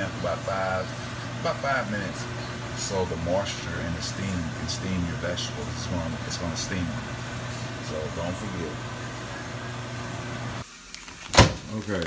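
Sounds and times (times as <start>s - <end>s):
microwave oven humming: 0.0s - 12.0s.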